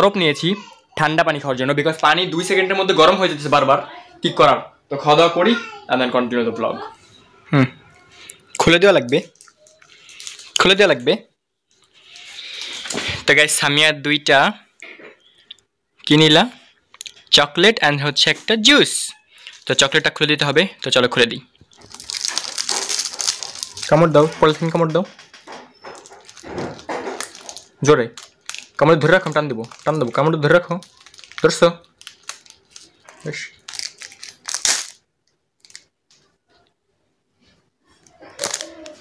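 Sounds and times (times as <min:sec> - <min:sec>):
plastic wrapper crinkling: 0:08.1 - 0:11.1, 0:11.7 - 0:13.1, 0:19.3 - 0:36.3, 0:38.1 - 0:39.0.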